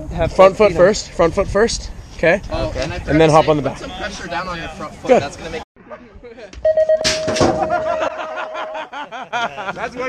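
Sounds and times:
long electronic beep: 6.6s - 7.4s
people laughing: 7.5s - 10.0s.

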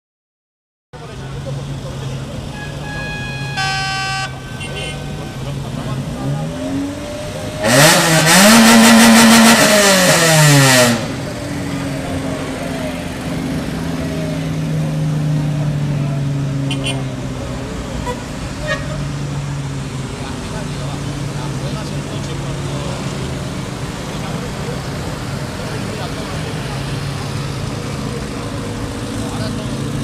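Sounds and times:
car engines idling: 1.0s - 30.0s
car horn toot: 2.4s - 5.5s, 16.7s - 17.1s, 18.0s - 19.0s
car engine revving: 4.7s - 30.0s.

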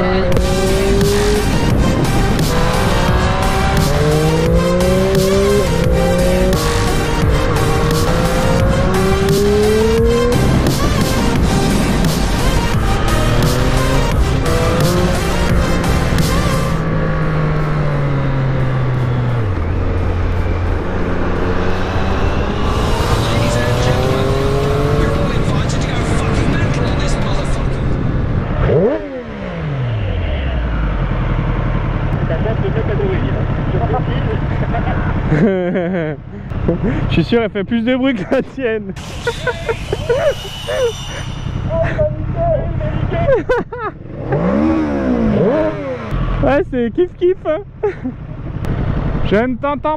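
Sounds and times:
background music: 0.0s - 28.0s
motorcycle engine accelerating: 0.0s - 49.9s
steep falling sweep: 38.9s - 41.8s.

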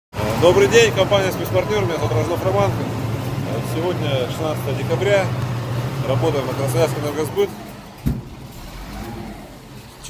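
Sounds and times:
vehicle engine rumbling: 0.1s - 10.0s
thump: 8.0s - 8.4s.

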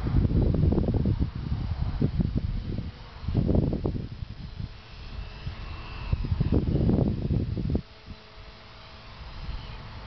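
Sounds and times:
model plane electric motor whine: 0.0s - 10.0s
wind buffeting microphone: 0.0s - 10.0s.

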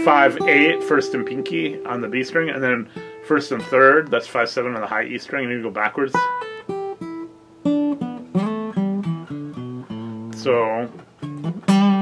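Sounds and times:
acoustic guitar plucked notes: 0.0s - 12.0s.

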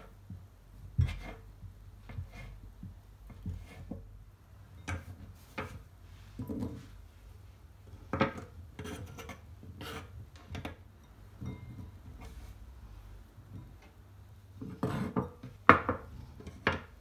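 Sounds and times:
knife cutting cheese on wood: 8.8s - 10.1s.

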